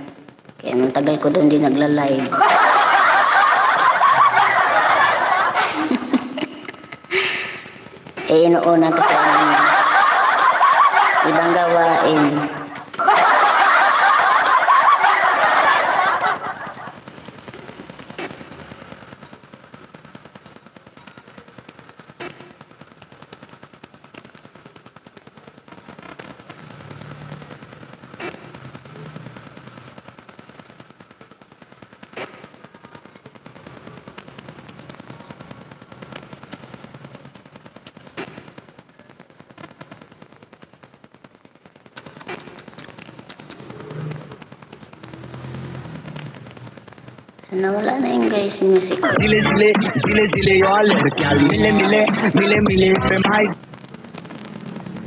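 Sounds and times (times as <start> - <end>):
faint rapid clicking: 12.2 - 50.4.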